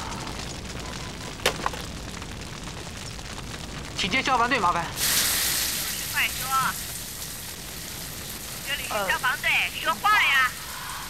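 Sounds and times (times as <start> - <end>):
fire crackling: 0.0 - 11.0.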